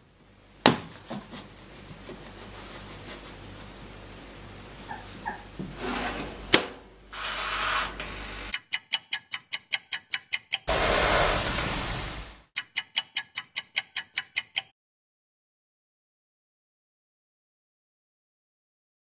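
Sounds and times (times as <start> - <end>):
sharp click: 8.5 - 10.7, 12.6 - 14.7
timer dial clicking rapidly: 8.5 - 10.7, 12.6 - 14.7
hiss: 10.7 - 12.5.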